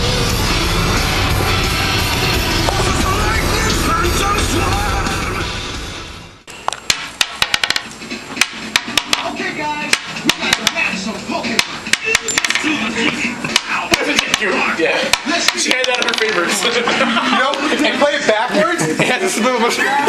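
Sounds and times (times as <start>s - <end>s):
loud music: 0.0s - 6.5s
metal balls clicking on wood: 6.7s - 10.9s, 11.6s - 12.7s, 13.5s - 14.5s, 15.1s - 16.5s
metal balls hitting metal cups: 6.7s - 11.0s, 11.6s - 12.8s, 13.5s - 16.6s.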